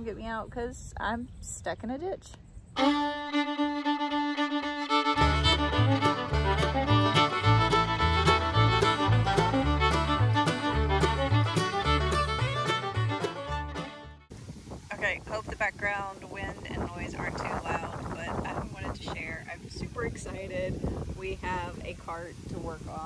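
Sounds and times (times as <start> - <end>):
upbeat fiddle music: 2.8 - 14.3
bouncing bass line: 4.0 - 14.2
wind buffeting microphone: 14.3 - 23.0.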